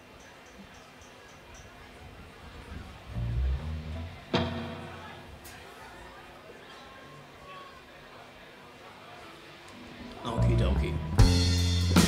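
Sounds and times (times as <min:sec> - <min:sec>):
electric bass guitar notes: 0:03.1 - 0:05.4, 0:10.3 - 0:12.0.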